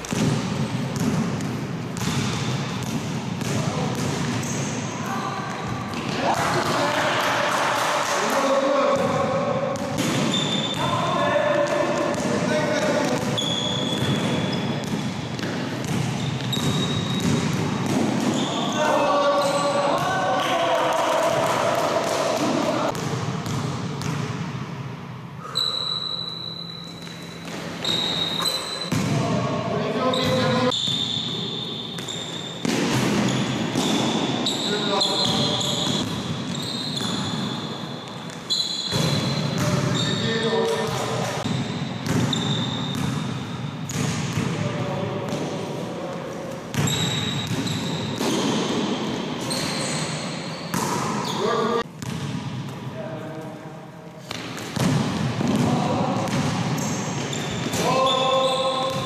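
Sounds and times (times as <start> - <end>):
basketball bouncing on floor: 0.0 - 4.4, 13.0 - 18.5
basketball bouncing on court floor: 0.0 - 4.7, 9.8 - 10.9, 11.6 - 18.6, 21.4 - 24.4, 27.4 - 29.3, 35.2 - 37.6, 41.2 - 44.6, 46.7 - 49.8, 52.0 - 52.8, 54.3 - 57.9
sneakers squeaking: 0.0 - 6.8, 8.9 - 20.5, 25.4 - 44.5, 46.3 - 52.9, 54.1 - 59.0
players' voices: 3.5 - 15.1, 57.7 - 59.0
short high squeaks: 10.3 - 10.8, 13.4 - 14.7, 25.4 - 28.9, 30.1 - 32.6, 34.4 - 40.5, 42.3 - 42.9, 46.8 - 48.5, 49.4 - 51.6.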